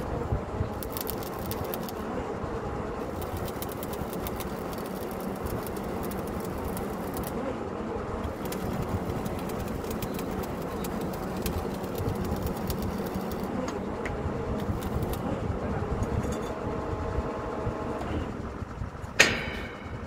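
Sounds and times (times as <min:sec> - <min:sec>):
drilling rig engine drone: 0:00.0 - 0:20.0
rapid irregular clicking: 0:00.8 - 0:02.1, 0:03.0 - 0:07.4, 0:08.2 - 0:15.3.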